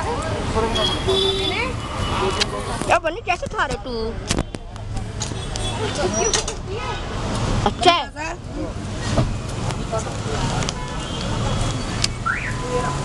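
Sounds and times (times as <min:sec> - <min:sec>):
people talking nearby: 0:00.0 - 0:12.2
traffic rumble: 0:00.0 - 0:13.0.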